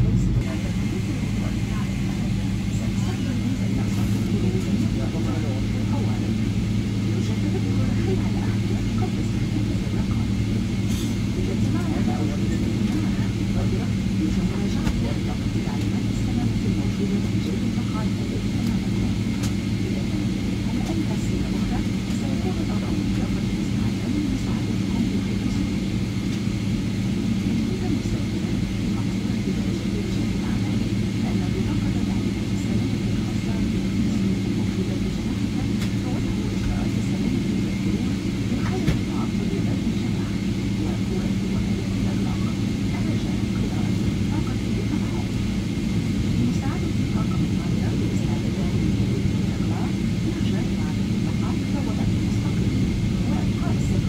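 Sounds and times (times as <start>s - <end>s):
airplane cabin hum: 0.0s - 54.0s.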